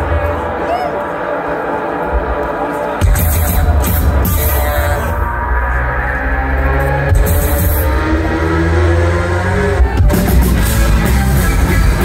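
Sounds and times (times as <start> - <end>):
electronic rock band over loud pa: 3.0 - 12.0.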